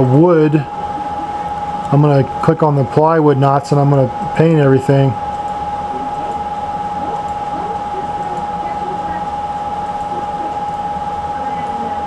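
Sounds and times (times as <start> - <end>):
faint voices: 0.0 - 5.2, 5.8 - 12.0
high-pitched electrical whine: 0.0 - 12.0
low hum: 0.0 - 12.0.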